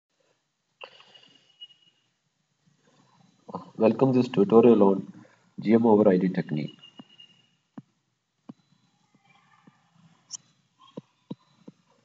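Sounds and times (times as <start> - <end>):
person speaking: 3.5 - 6.7.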